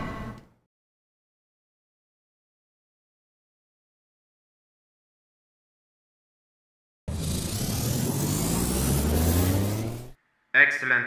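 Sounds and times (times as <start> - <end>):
sci-fi machine power-up whine: 7.1 - 10.2.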